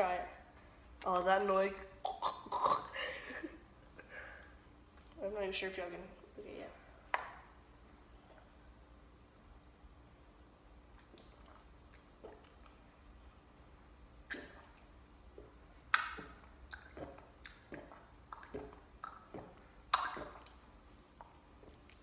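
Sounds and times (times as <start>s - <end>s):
person gulping a drink: 2.0s - 5.2s, 10.8s - 13.2s, 14.2s - 22.0s.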